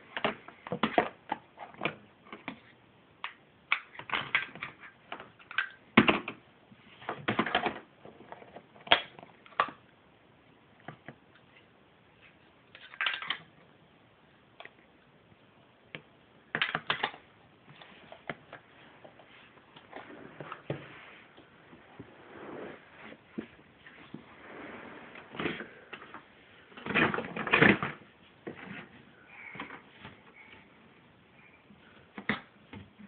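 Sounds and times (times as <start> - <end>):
shuffling and rubbing: 17.6 - 26.7.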